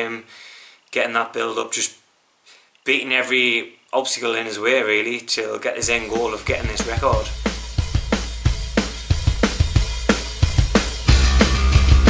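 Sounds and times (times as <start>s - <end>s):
rock drum beat: 5.8s - 12.0s.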